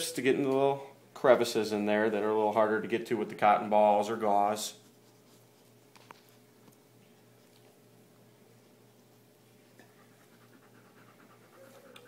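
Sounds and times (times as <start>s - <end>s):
dog panting: 9.7s - 12.0s.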